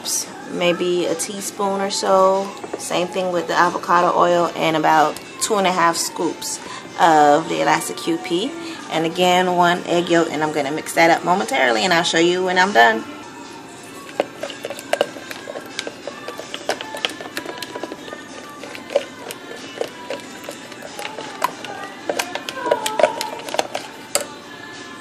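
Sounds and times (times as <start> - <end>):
faint background music: 0.0 - 25.0
spatula scraping plastic bowl: 13.8 - 24.4.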